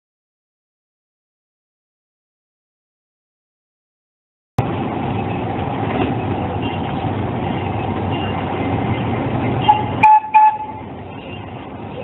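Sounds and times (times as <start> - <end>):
miniature train rumble and rattle: 4.6 - 12.0
train whistle toots: 9.7 - 10.8.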